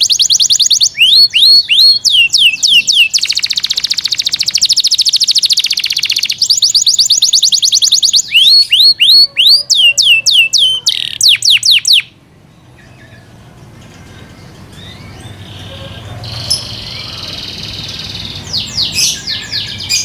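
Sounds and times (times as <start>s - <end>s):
canary singing: 0.0s - 20.0s.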